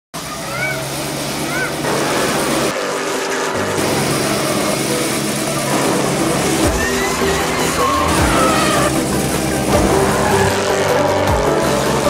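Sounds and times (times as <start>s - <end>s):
car engine running: 0.1s - 12.0s
voices: 0.2s - 12.0s
music: 0.3s - 12.0s
rising and falling tones: 1.6s - 12.0s.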